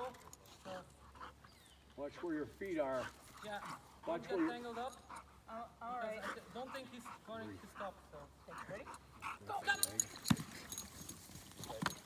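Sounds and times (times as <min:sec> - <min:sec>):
dog collar jingling: 0:00.0 - 0:00.9, 0:04.3 - 0:05.4, 0:08.7 - 0:12.0.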